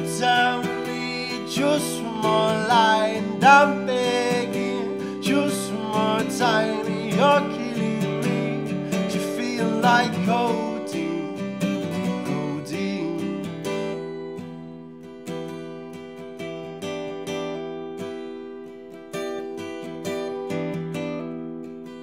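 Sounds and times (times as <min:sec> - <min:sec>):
man singing: 0:00.0 - 0:13.9
acoustic guitar strumming: 0:00.0 - 0:22.0
picked guitar notes: 0:00.0 - 0:22.0.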